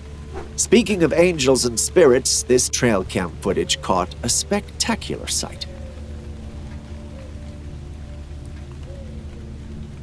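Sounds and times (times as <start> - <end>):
low drone music: 0.0 - 10.0.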